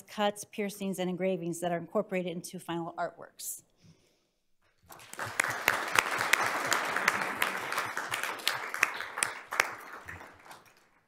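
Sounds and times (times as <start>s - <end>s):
audience applauding: 4.9s - 11.0s.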